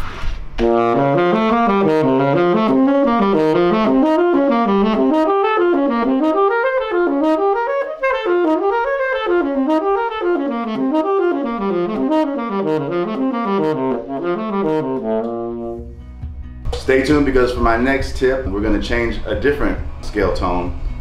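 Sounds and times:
tenor saxophone arpeggios: 0.6s - 15.9s.

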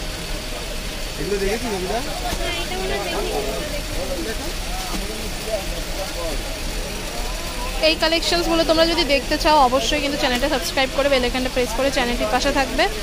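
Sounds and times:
people talking: 1.0s - 13.0s.

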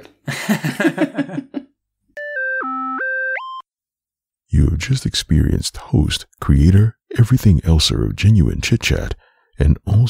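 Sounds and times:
person laughing: 0.2s - 1.7s
synthesizer beep-like notes: 2.2s - 3.6s.

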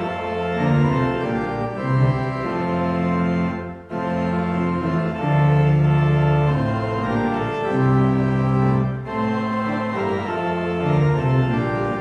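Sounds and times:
church organ playing hymn: 0.0s - 12.0s.

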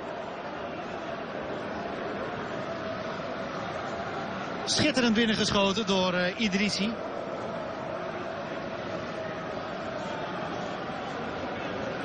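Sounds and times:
stadium crowd murmur: 0.0s - 12.0s.

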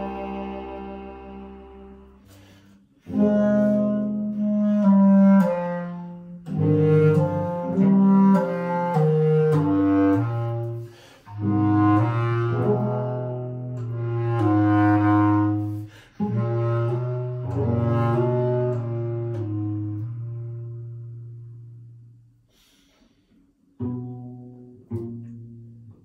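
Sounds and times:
bass clarinet: 0.0s - 26.0s
cello: 0.0s - 26.0s.

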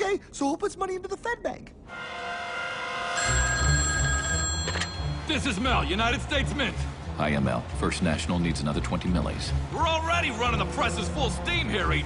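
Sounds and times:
telephone bell ringing: 3.2s - 5.5s.

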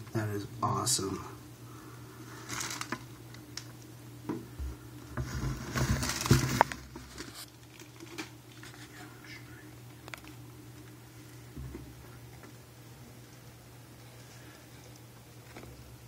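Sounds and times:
steady low hum: 0.0s - 16.0s
rustling and crinkling: 2.2s - 16.0s.

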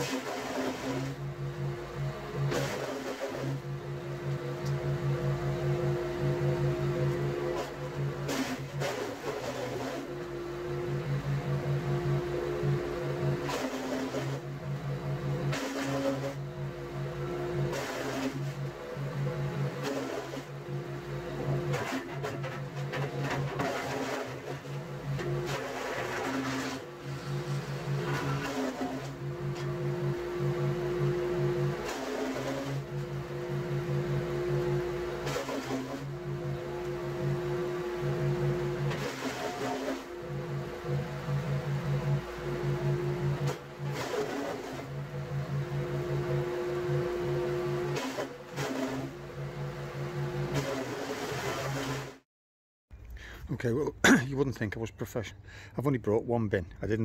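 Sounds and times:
garden chipper-shredder running: 0.0s - 52.2s, 52.9s - 55.9s.

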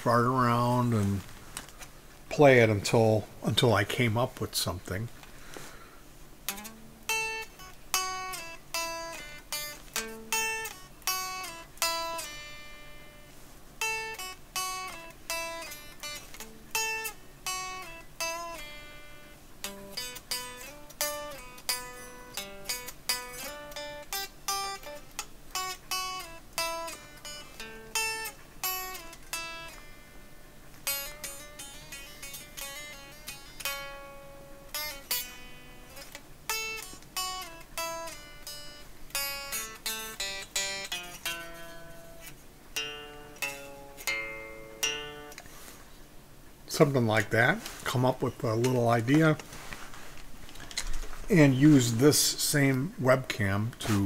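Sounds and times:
solo guitar playing: 0.0s - 45.8s, 46.7s - 54.0s.

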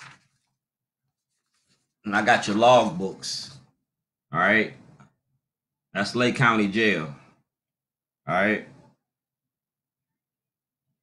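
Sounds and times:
paper rustling: 0.0s - 3.0s.

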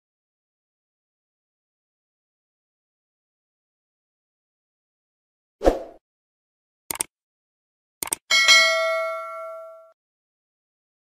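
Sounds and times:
notification bell ding: 8.3s - 10.0s.

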